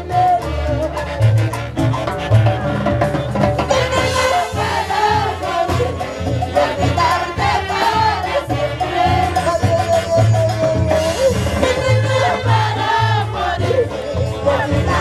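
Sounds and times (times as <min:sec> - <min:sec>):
latin dance band playing: 0:00.0 - 0:15.0.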